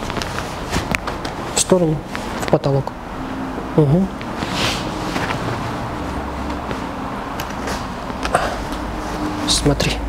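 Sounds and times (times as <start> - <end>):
room background noise: 0.0 - 10.0.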